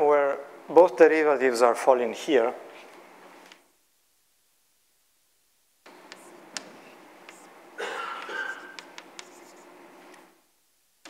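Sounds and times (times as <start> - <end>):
chalk tapping on board: 6.0 - 7.5, 8.2 - 9.8
chalk scratching on blackboard: 6.1 - 7.6, 8.2 - 9.8.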